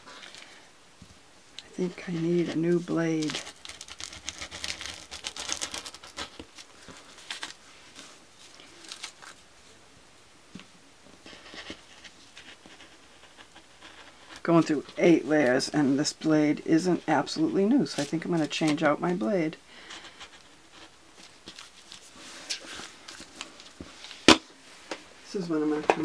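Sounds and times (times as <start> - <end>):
short wordless voice: 1.6 - 3.4
paper rustling: 1.8 - 9.4, 11.2 - 16.3, 16.9 - 24.4.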